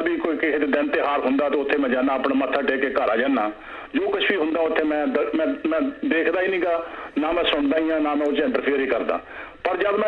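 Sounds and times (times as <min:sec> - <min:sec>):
man talking over telephone: 0:00.0 - 0:10.0.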